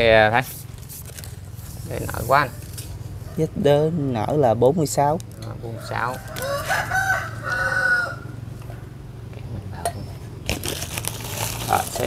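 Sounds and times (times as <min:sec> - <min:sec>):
rooster crowing: 0:05.6 - 0:08.9.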